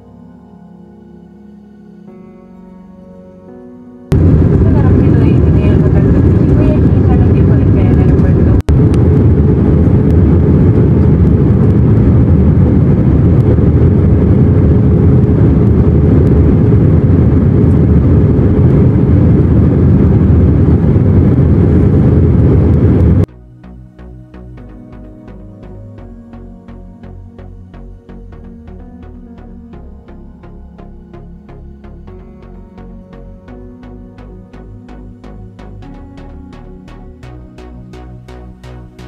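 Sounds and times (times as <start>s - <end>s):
jet airliner cabin roar: 4.1s - 39.0s.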